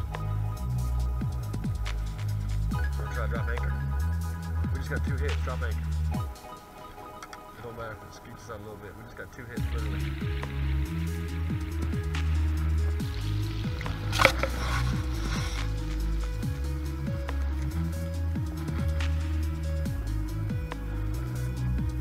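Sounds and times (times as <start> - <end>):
electronic music with deep bass: 0.0 - 8.8, 9.4 - 22.0.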